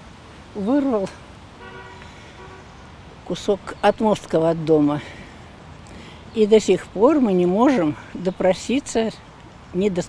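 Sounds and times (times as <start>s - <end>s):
faint vehicle horn: 1.6s - 2.8s.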